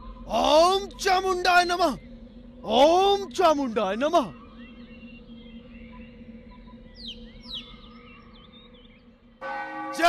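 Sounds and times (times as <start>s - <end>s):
low ringing drone: 0.0s - 10.0s
temple bell ringing: 9.4s - 10.0s.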